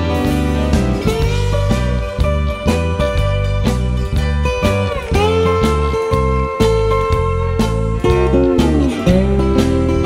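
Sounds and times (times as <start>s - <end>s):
steady bass: 0.0s - 10.0s
strummed acoustic guitar: 0.0s - 10.0s
guitar line sliding down: 8.1s - 10.0s.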